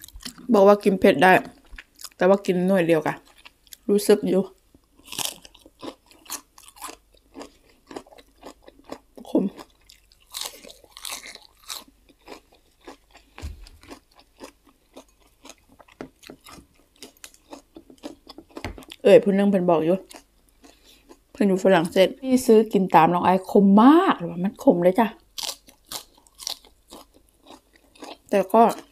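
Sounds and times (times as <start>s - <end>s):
chewing crisp food: 0.0s - 0.5s, 1.5s - 2.2s, 3.2s - 3.9s, 4.8s - 19.1s, 20.0s - 21.4s, 25.2s - 28.9s.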